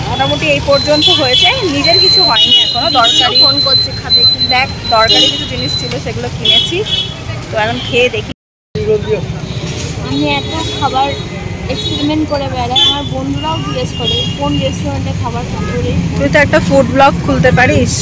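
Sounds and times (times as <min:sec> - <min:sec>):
people talking: 0:00.0 - 0:09.4, 0:10.0 - 0:18.0
street traffic noise: 0:00.0 - 0:18.0.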